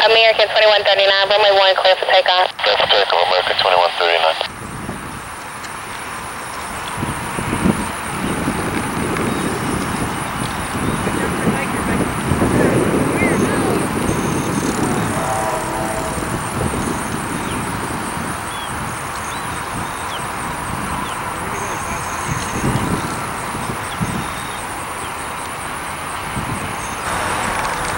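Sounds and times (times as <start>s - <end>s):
jet engines rumbling while taxiing: 0.0s - 27.9s.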